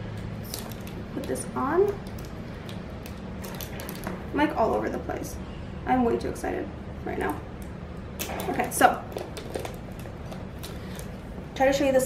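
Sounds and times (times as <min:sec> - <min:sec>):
low room hum: 0:00.0 - 0:12.0
handbag clicks and rustles: 0:00.2 - 0:05.0, 0:08.2 - 0:11.3.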